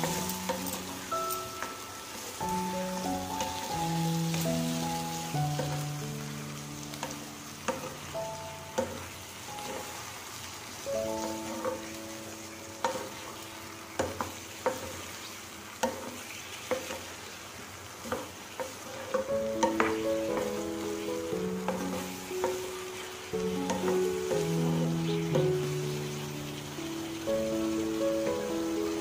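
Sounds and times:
background music: 0.0 - 14.2, 19.3 - 29.0
food sizzling in oil: 0.0 - 29.0
spatula scraping a pan: 7.0 - 8.0, 8.8 - 10.0, 15.8 - 17.1, 18.0 - 25.4.

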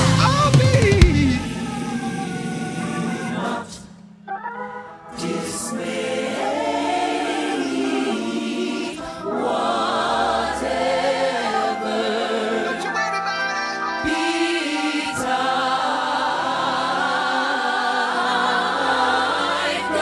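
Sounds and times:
gospel choir singing: 0.0 - 20.0
keyboard accompaniment: 0.0 - 20.0.

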